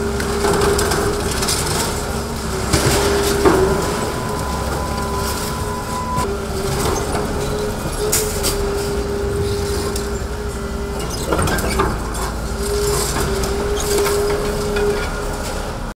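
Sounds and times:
concrete cracking and rubble falling: 0.0s - 5.9s
excavator engine and hydraulics whine: 0.0s - 15.9s.

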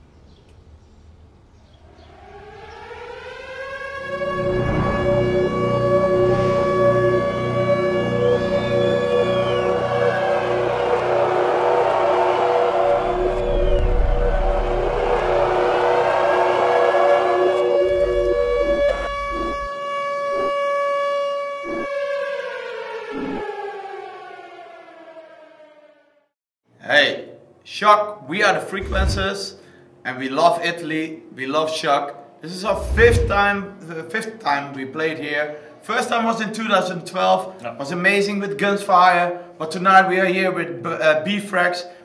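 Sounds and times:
air-raid siren winding up: 1.9s - 24.2s, 28.8s - 29.3s, 32.7s - 33.4s
low rumble: 17.8s - 19.7s, 28.8s - 29.3s, 32.7s - 33.6s.

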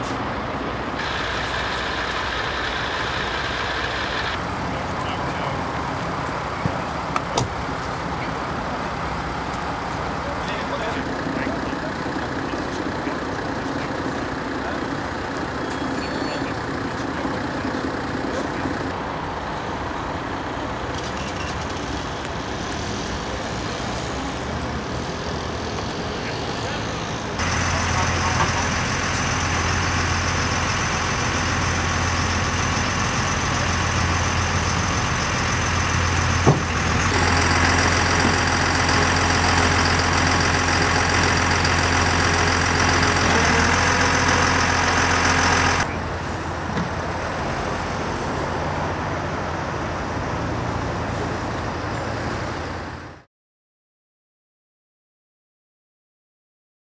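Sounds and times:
tow truck engine running: 0.0s - 53.3s.

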